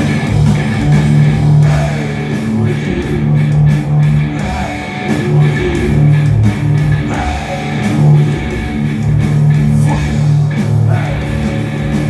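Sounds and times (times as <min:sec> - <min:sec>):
electric guitar low chords: 0:00.0 - 0:12.0
rock band music: 0:00.0 - 0:12.0.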